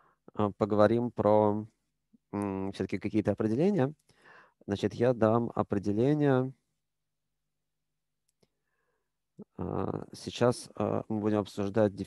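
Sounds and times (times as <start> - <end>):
man speaking: 0.4 - 1.7, 2.4 - 4.0, 4.7 - 6.5, 9.4 - 12.0.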